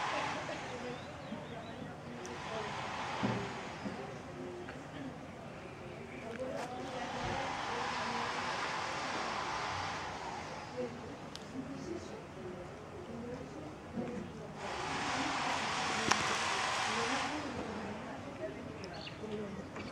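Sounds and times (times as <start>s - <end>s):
indistinct voices: 0.0s - 19.9s.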